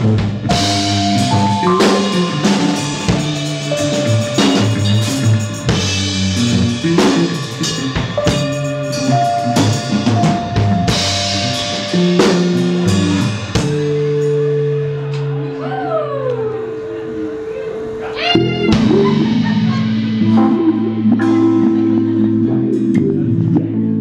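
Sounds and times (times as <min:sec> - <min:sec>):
drum kit steady beat: 0:00.0 - 0:15.1, 0:18.2 - 0:23.7
upright bass notes: 0:00.0 - 0:15.7, 0:16.4 - 0:24.0
long held high notes: 0:00.5 - 0:23.7.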